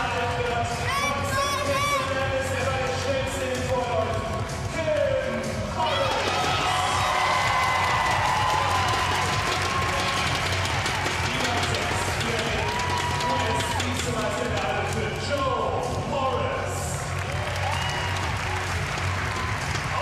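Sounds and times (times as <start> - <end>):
arena music over loudspeakers: 0.0 - 20.0
crowd cheering: 5.8 - 15.5, 16.4 - 20.0.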